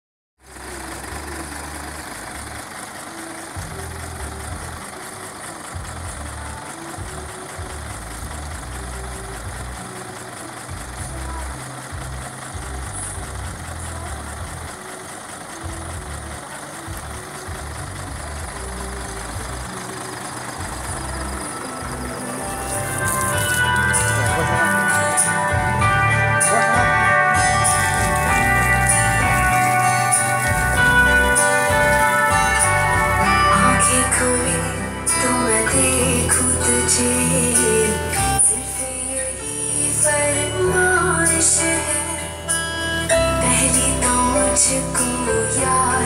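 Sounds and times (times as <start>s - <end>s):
bass-heavy music: 0.4s - 46.0s
truck engine idling: 0.4s - 46.0s.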